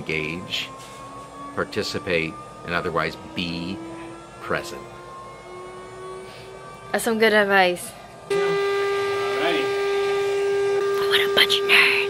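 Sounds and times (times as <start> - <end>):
electronic school bell tone: 8.3 - 12.0.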